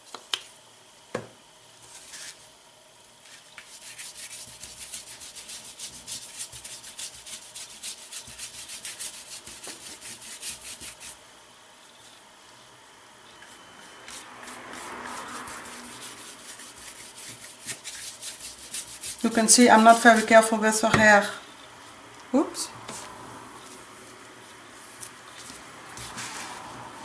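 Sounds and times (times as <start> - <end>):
paintbrush scrubbing on paper: 3.2 - 11.2, 13.5 - 20.6, 22.9 - 26.8.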